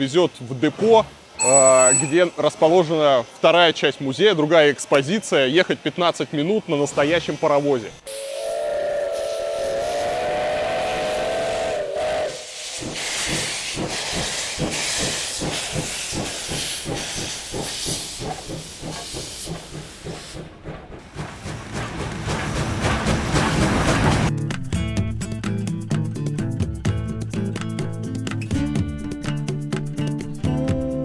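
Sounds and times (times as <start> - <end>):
hissing steam: 6.3 - 24.3
steam engine chuffing: 7.0 - 24.3
steam locomotive whistle: 8.0 - 13.5
music: 24.3 - 31.0.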